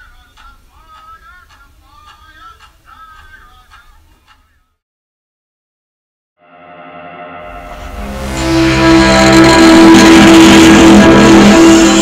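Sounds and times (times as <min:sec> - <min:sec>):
high wavering singing: 0:06.8 - 0:12.0.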